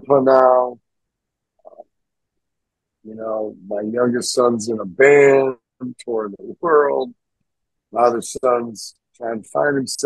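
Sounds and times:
man saying uh: 0.0 - 0.8, 3.1 - 7.1, 8.0 - 10.0.

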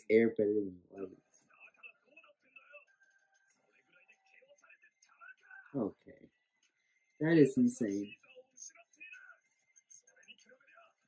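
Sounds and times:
faint dialogue voices: 0.0 - 11.0.

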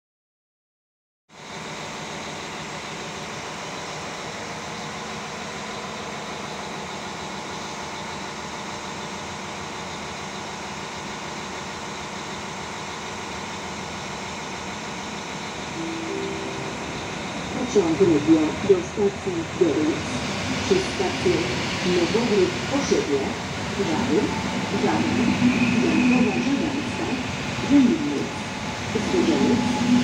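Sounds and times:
trains humming and rumbling: 1.4 - 30.0
short high note: 15.8 - 17.6.

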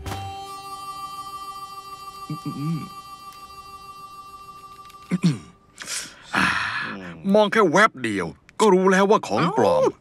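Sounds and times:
sustained drone score: 0.0 - 6.3.

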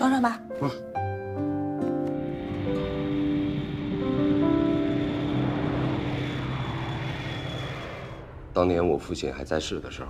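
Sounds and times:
soft background music: 0.0 - 6.7
jet airliner engine rushing: 2.1 - 10.0.

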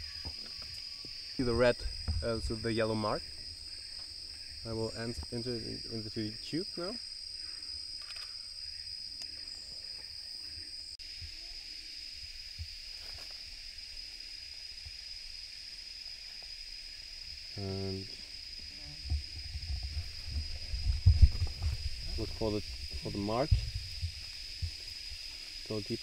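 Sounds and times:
high insect tone: 0.0 - 26.0
insects droning: 0.0 - 26.0.

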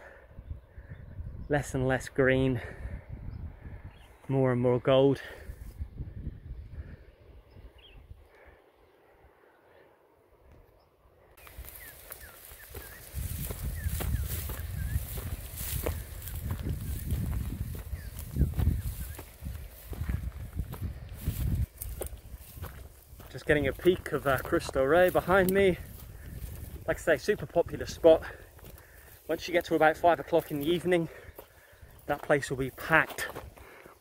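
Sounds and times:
wind rumble on microphone: 0.3 - 4.2, 5.4 - 8.2, 11.4 - 29.0
footsteps crunching through dry grass: 11.4 - 34.0.

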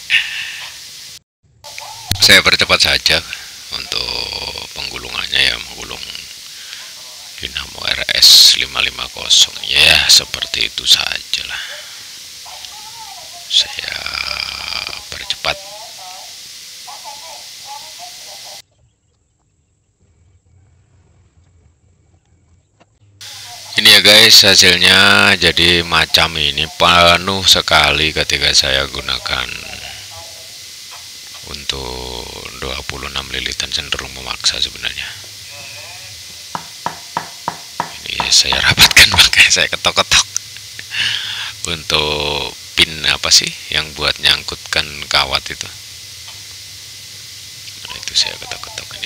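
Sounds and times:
faint voices: 1.7 - 16.3.

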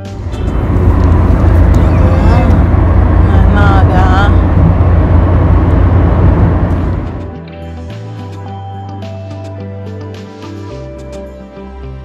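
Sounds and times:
wind and road noise in car: 0.0 - 7.4
person's voice: 1.7 - 4.6.

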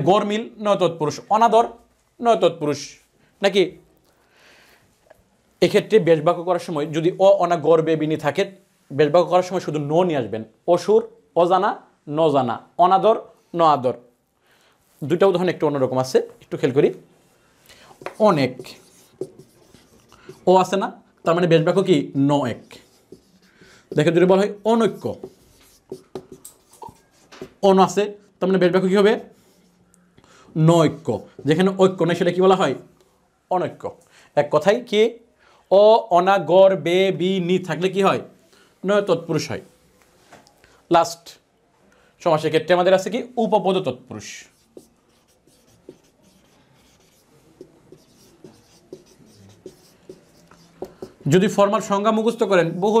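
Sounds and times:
marker writing on whiteboard: 17.8 - 20.8, 21.4 - 29.8, 30.8 - 32.9, 43.8 - 52.4.

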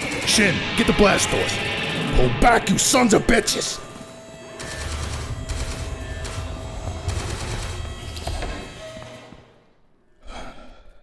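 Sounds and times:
rapid automatic gunfire: 0.0 - 1.1, 4.5 - 8.1.

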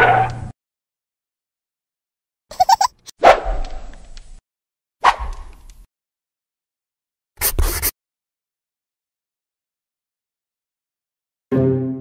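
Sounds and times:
short squeaky blips: 2.5 - 3.1.

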